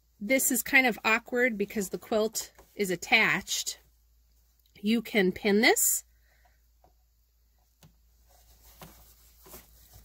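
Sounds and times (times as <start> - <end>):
cloth rustling by hand: 0.0 - 4.6, 6.7 - 10.0.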